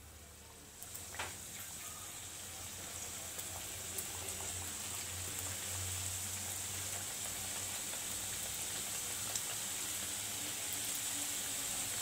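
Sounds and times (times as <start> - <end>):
oil sizzling and bubbling: 0.0 - 12.0.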